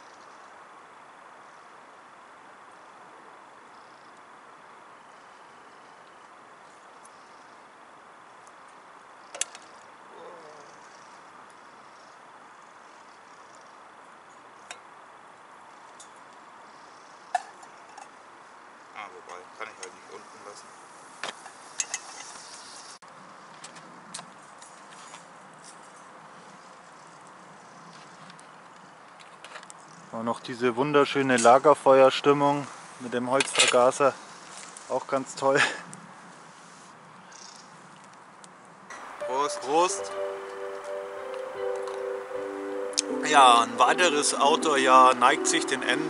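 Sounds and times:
faint steady hiss: 0.0s - 46.0s.

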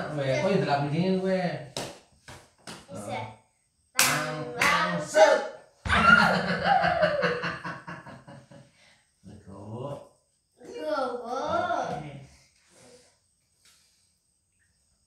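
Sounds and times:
sharp smacks: 1.8s - 2.9s.

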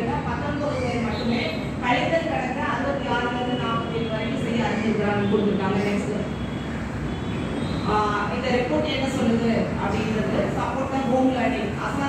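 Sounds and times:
woman's voice: 0.0s - 6.3s, 7.8s - 12.0s
large room hiss and rumble: 0.0s - 12.0s.

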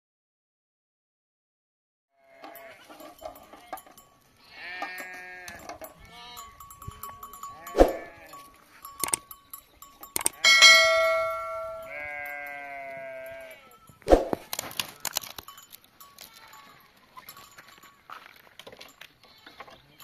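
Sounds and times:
sheep and goats bleating: 2.2s - 9.0s, 10.3s - 13.9s, 16.1s - 17.6s, 19.0s - 20.0s
bells clinking: 2.4s - 20.0s.

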